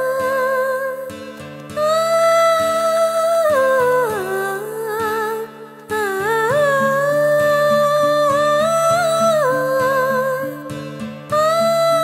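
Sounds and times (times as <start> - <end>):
plucked string accompaniment: 0.0 - 12.0.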